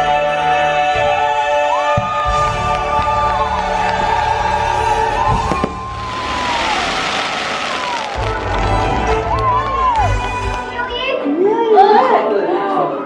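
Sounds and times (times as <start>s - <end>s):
stage show music with singing: 0.0s - 11.6s
sharp cracks: 5.6s - 8.7s
loud hissing rush: 5.8s - 8.4s.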